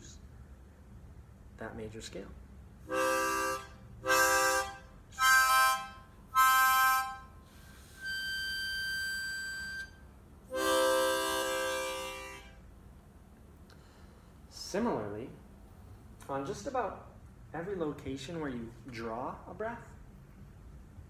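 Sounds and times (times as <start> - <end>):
harmonica chords: 2.8 - 12.6
harmonica single high note: 2.9 - 12.6.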